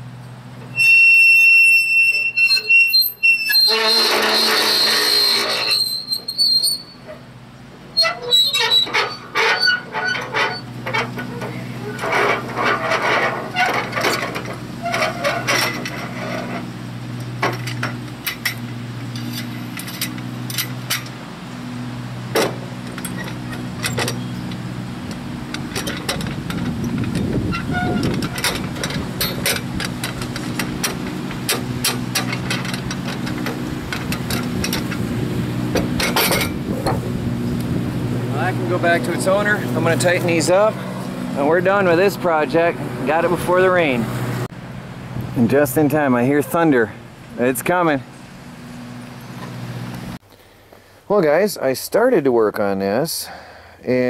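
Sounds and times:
high metallic squeal: 0:00.7 - 0:07.2, 0:08.0 - 0:14.2, 0:14.8 - 0:16.6, 0:26.7 - 0:29.6
metal scraping: 0:00.7 - 0:07.2, 0:08.0 - 0:21.2, 0:22.2 - 0:37.6
sharp metal clicks and knocks: 0:08.6 - 0:21.2, 0:22.3 - 0:35.1, 0:35.7 - 0:37.0.

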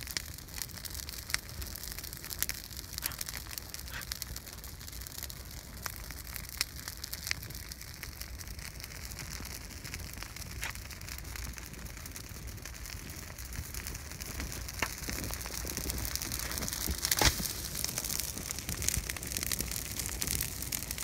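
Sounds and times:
fire crackling: 0:00.0 - 0:21.0
fire popping: 0:00.0 - 0:21.0.

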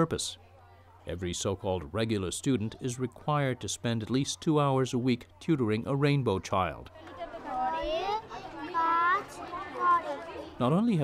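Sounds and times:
faint children's voices: 0:00.0 - 0:11.0
child speaking in high voice: 0:07.5 - 0:10.3.

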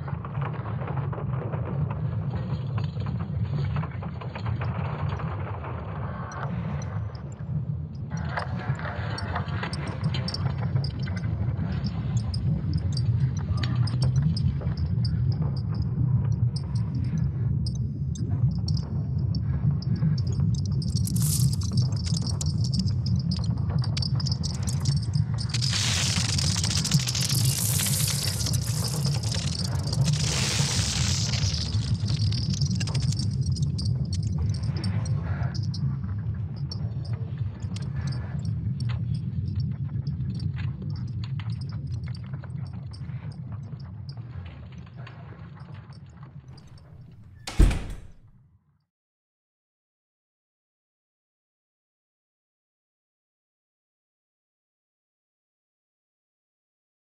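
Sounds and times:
scattered clicks: 0:08.2 - 0:15.8, 0:18.2 - 0:18.9, 0:19.8 - 0:35.8.

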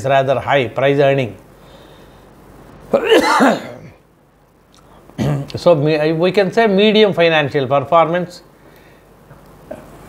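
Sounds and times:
man coughing: 0:03.0 - 0:04.0, 0:05.2 - 0:05.5.

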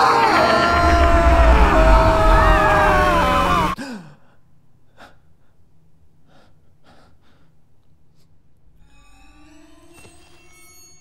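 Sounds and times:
loud rushing rumbling effect: 0:00.4 - 0:03.8.

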